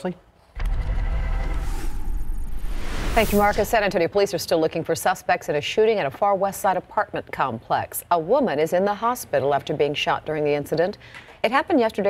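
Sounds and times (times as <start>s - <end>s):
deep bass swell: 0.6s - 4.0s
rising whooshing wash: 0.6s - 4.0s.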